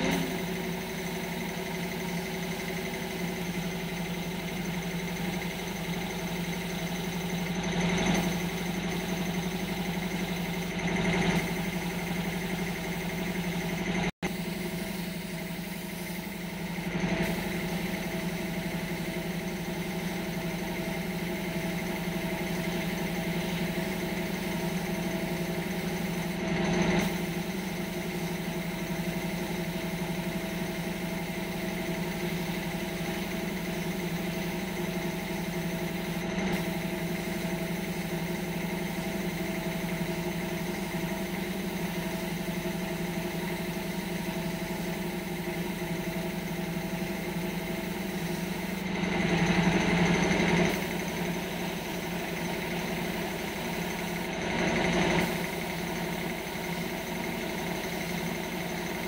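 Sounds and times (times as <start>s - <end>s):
air compressor humming: 0.0s - 59.0s.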